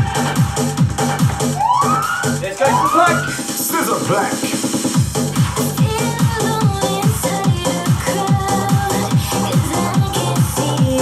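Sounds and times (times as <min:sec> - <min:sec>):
electronic dance music: 0:00.0 - 0:11.0
kick-drum beat: 0:00.0 - 0:11.0
rising siren-like synth swoops: 0:01.6 - 0:03.4.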